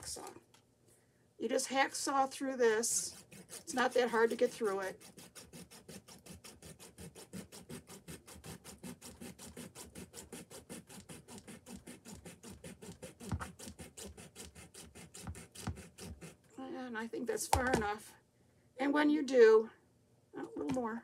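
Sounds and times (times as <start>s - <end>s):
hacksaw cutting plastic: 2.8s - 16.5s.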